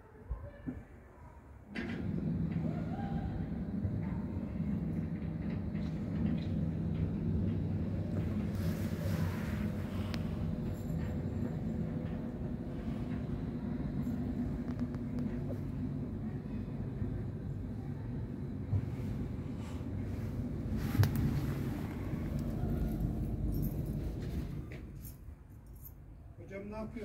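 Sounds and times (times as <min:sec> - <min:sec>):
low mechanical hum and rumble: 0:01.5 - 0:27.0.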